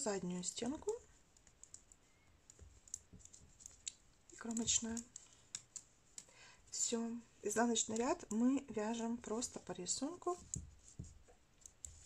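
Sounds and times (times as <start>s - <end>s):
knitting needles clicking: 0.6s - 6.9s, 7.5s - 12.0s.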